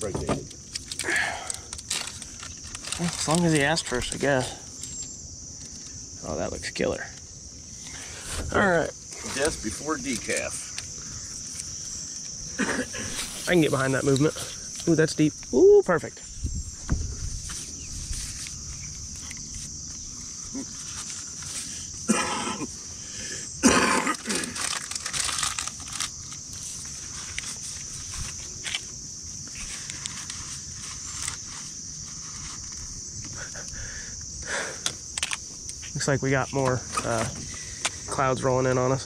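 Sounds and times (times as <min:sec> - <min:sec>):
insects droning: 0:00.0 - 0:39.0.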